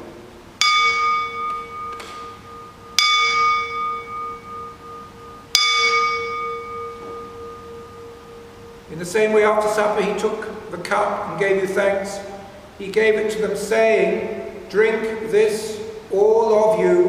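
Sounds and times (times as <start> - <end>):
bell ringing: 0.6 - 10.3.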